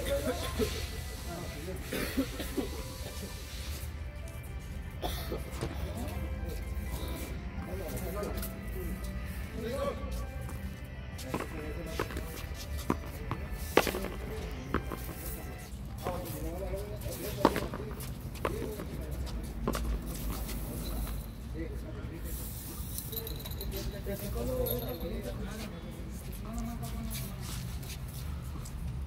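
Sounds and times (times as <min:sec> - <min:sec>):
voices: 0:00.0 - 0:03.8
background music: 0:00.0 - 0:26.1.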